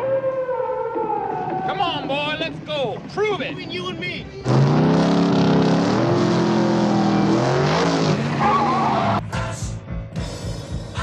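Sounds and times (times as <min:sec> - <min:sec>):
car engines revving: 0:01.8 - 0:09.3
wavering squeal: 0:08.4 - 0:09.2.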